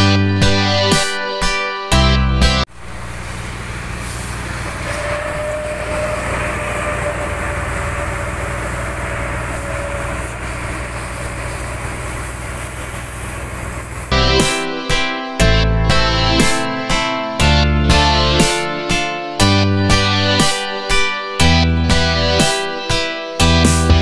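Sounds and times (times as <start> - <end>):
truck engine running: 2.7 - 14.6.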